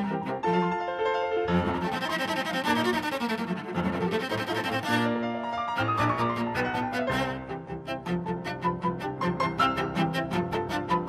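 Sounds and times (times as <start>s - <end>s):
cello bowing: 0.0s - 11.0s
grand piano playing: 0.0s - 11.0s.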